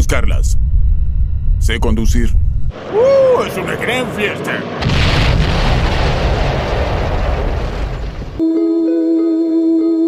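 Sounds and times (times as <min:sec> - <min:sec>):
cartoon crash explosion rumble: 0:02.8 - 0:08.4.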